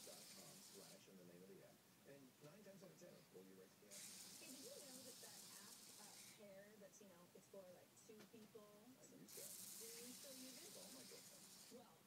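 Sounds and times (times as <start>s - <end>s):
light hiss: 0.0s - 1.2s, 3.9s - 6.6s, 9.1s - 12.0s
faint distant voices: 0.0s - 12.0s.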